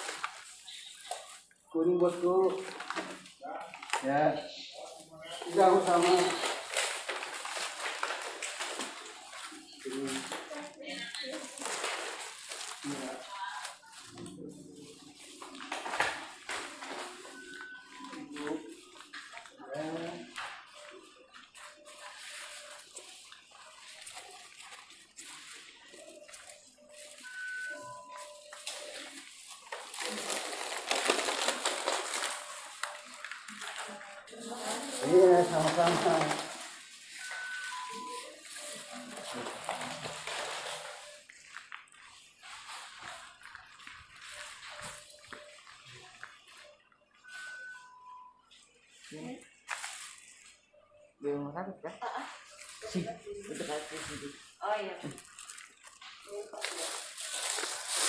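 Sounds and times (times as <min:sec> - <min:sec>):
two-note beep: 0:37.1 - 0:39.5, 0:47.2 - 0:48.5.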